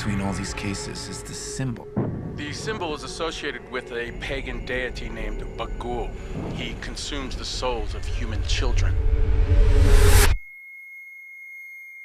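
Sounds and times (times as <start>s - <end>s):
noisy horror sound design: 0.0s - 10.4s.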